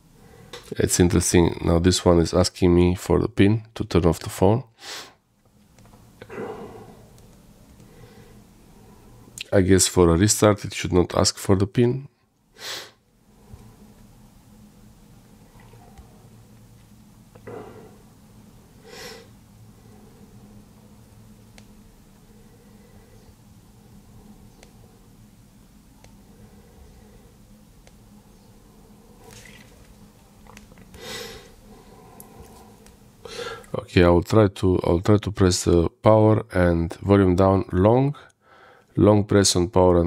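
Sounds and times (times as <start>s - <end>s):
faint low hum: 0.0s - 40.0s.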